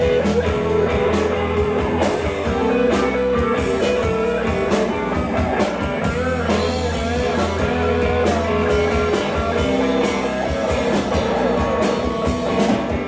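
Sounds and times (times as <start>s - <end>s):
rock band playing: 0.0s - 13.0s
sustained lead guitar: 0.0s - 13.0s.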